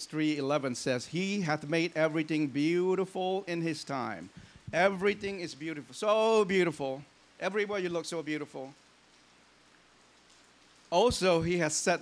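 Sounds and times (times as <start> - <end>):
man speaking: 0.0 - 8.8, 10.9 - 12.0
faint room tone hiss: 0.0 - 12.0.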